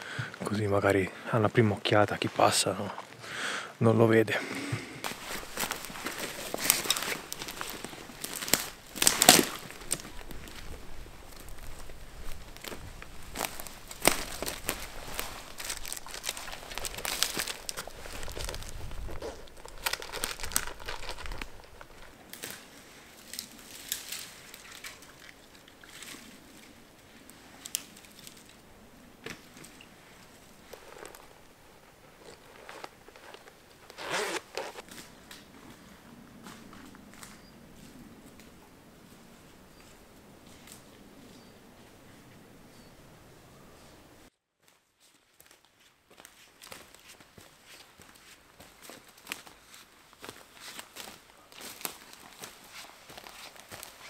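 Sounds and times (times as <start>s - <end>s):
footsteps crunching dry forest litter: 4.4s - 41.5s, 44.6s - 54.0s
twigs cracking: 4.5s - 35.6s, 45.4s - 54.0s
camouflage net rustling and crinkling: 4.7s - 36.8s, 44.6s - 54.0s.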